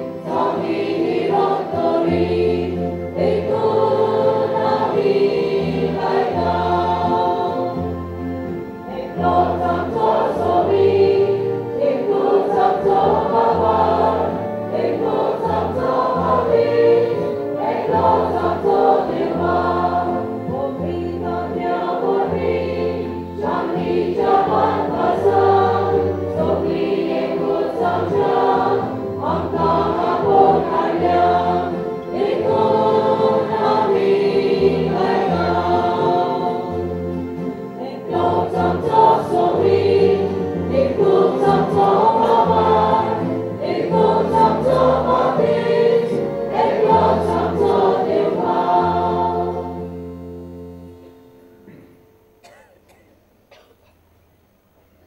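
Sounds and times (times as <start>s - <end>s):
choir singing a hymn: 0.0s - 51.8s.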